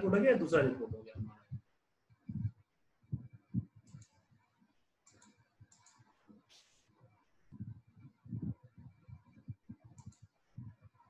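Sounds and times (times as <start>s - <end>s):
computer mouse clicks: 3.2s - 4.3s, 5.0s - 6.4s, 8.8s - 10.7s.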